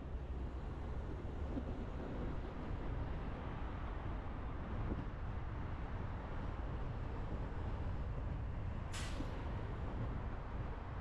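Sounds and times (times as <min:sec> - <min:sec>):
bus air brakes hiss: 0:09.0 - 0:09.4.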